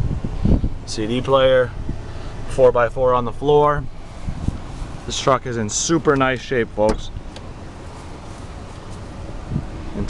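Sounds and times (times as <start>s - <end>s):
wind on microphone: 0.0s - 0.9s, 4.2s - 4.8s, 9.3s - 9.9s
truck engine idling: 0.0s - 10.0s.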